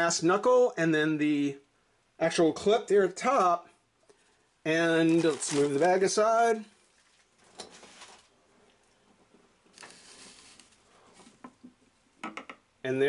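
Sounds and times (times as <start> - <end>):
soft plastic rustling: 4.1 - 11.7.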